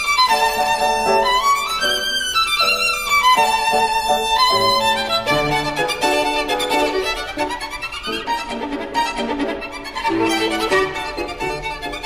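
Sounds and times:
solo violin fast passage: 0.0s - 12.0s.

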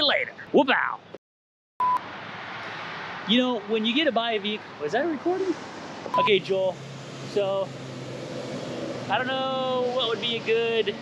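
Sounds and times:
short electronic beep: 1.8s - 2.0s, 6.1s - 6.4s.

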